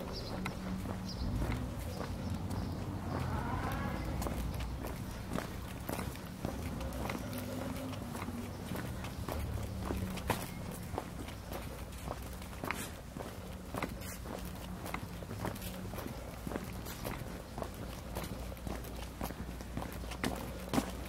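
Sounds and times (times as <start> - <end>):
footsteps on brick paving: 0.0 - 21.0.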